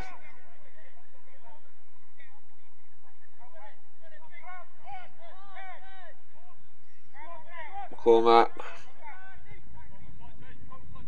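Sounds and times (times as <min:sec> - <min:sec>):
distant footballers shouting: 0:00.0 - 0:11.0.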